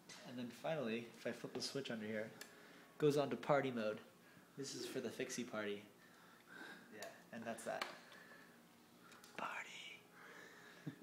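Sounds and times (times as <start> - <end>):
person whispering: 9.3 - 10.1.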